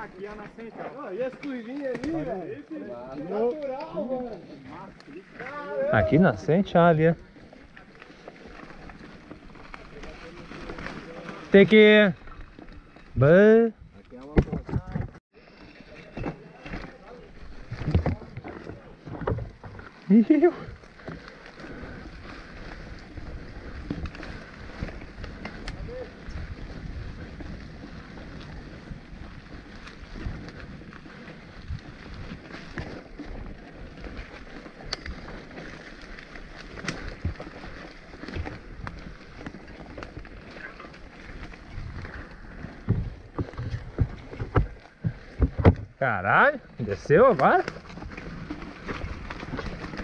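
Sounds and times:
bike tyres on dirt trail: 0.0s - 50.0s.

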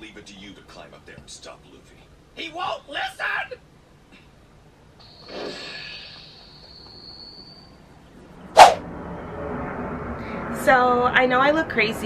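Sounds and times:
thin high whine: 5.0s - 8.0s
short loud whoosh: 8.6s - 8.9s.

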